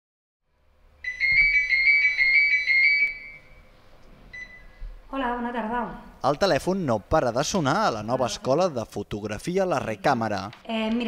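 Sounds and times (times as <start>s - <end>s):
telephone ringing: 1.0s - 3.6s.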